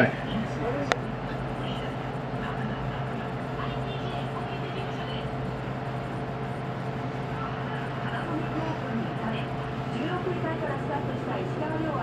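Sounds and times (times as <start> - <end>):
faint voices: 0.0 - 12.0
low ventilation hum: 0.0 - 12.0.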